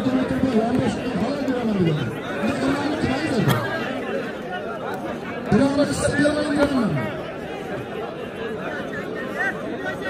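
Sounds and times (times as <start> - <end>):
men talking over one another: 0.0 - 10.0.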